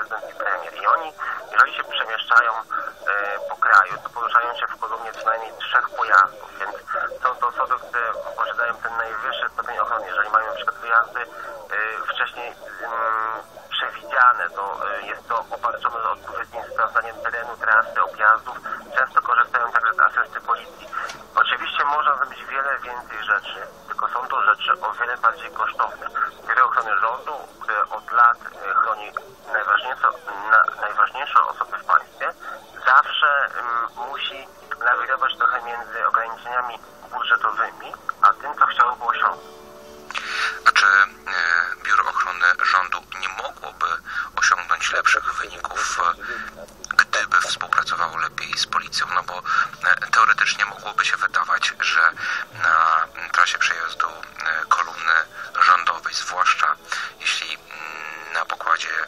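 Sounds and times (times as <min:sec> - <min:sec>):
speech over radio or phone: 0:00.0 - 0:39.4, 0:40.1 - 0:59.0.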